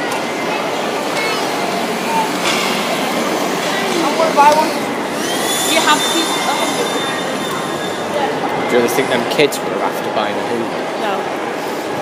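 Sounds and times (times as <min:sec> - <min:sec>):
vacuum cleaner motor whine: 0:01.5 - 0:08.7.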